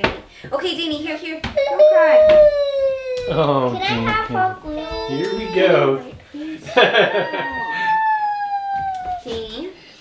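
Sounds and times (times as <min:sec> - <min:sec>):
child crying: 0:01.6 - 0:06.1, 0:07.0 - 0:09.7.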